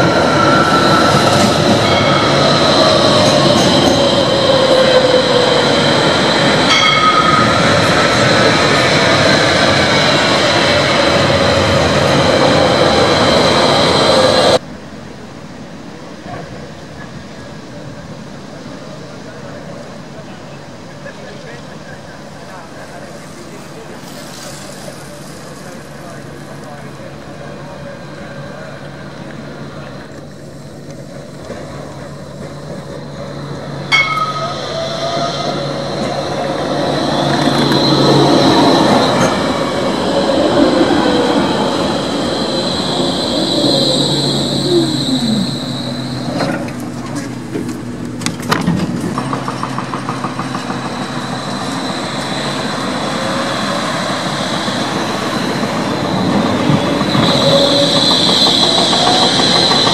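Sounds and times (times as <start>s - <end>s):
wheels squealing on rails: 0.0s - 14.6s, 18.6s - 59.9s
tram motor whine: 0.0s - 15.0s, 25.7s - 59.9s.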